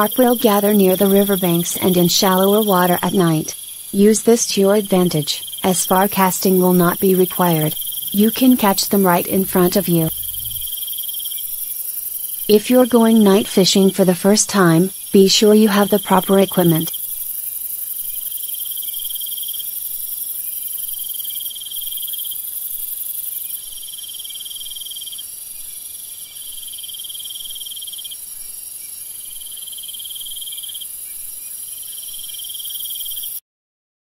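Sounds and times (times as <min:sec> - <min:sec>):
insect trill: 0:00.0 - 0:13.2, 0:14.9 - 0:33.4
insects chirping: 0:00.0 - 0:13.2, 0:14.9 - 0:33.4.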